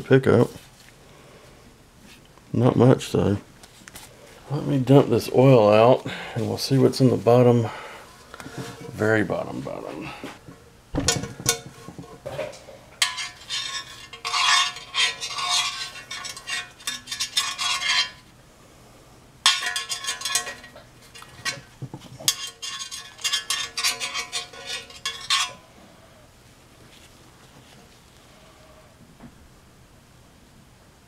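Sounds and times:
metal tool scraping in oil pan: 11.5 - 18.3, 19.5 - 25.7
metal pan ringing: 19.5 - 21.7.

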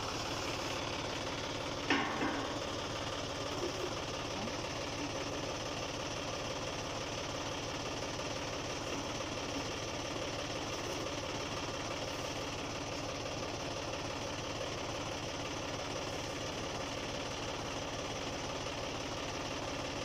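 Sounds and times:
tractor diesel engine idling: 0.0 - 20.0.

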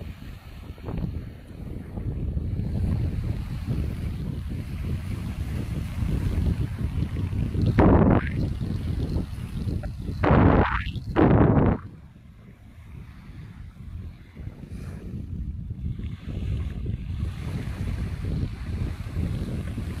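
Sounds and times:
small waves washing onto sand: 0.0 - 11.8, 12.5 - 20.0
wind buffeting microphone: 0.0 - 20.0.

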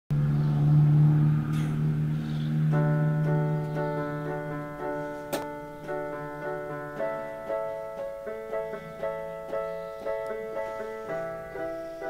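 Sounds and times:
low electronic keyboard note: 0.2 - 12.0.

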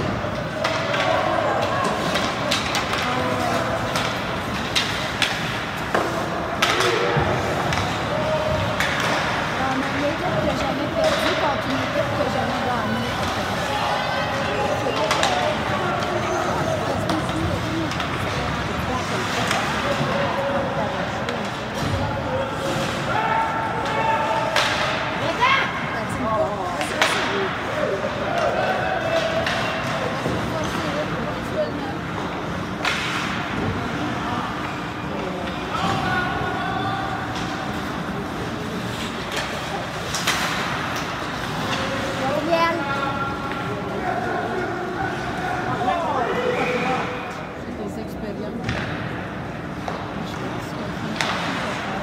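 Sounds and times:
hockey sticks clacking: 0.0 - 47.3, 48.6 - 52.0.

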